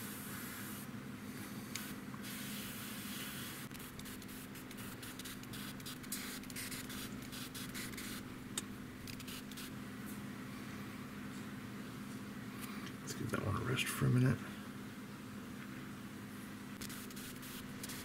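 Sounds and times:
airbrush hissing: 0.0 - 0.9, 1.7 - 8.2, 9.1 - 9.7, 16.8 - 18.0.

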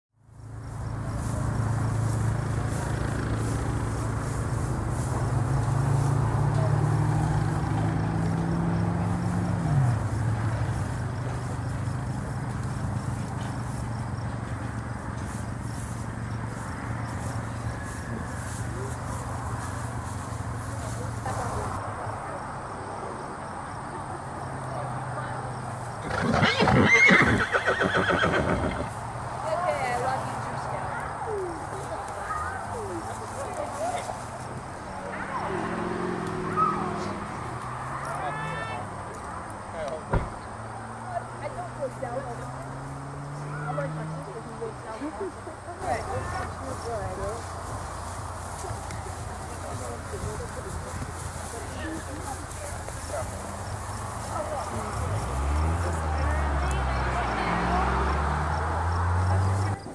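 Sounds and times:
horse whinnying: 26.0 - 28.9.

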